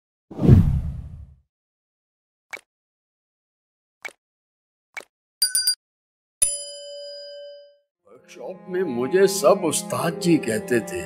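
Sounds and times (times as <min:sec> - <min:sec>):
whoosh with heavy low end: 0:00.4 - 0:01.3.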